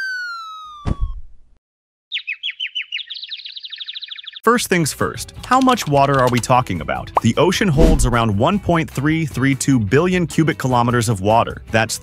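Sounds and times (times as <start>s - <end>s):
falling slide whistle: 0.0s - 1.2s
cartoon birds twittering: 2.1s - 4.4s
thud: 7.8s - 8.3s.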